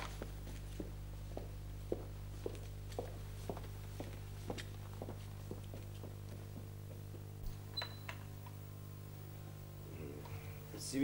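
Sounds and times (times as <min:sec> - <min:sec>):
steady low hum: 0:00.0 - 0:11.0
door squeak: 0:07.7 - 0:08.3.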